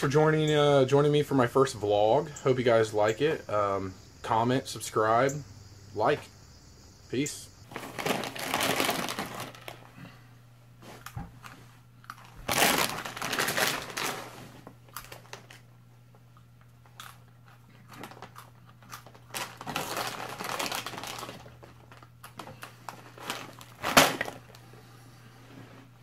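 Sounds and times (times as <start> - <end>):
crunching: 7.7 - 9.8, 10.9 - 15.7, 16.4 - 24.6
plastic snack bag rustling: 7.7 - 9.9, 10.8 - 15.6, 17.4 - 24.6.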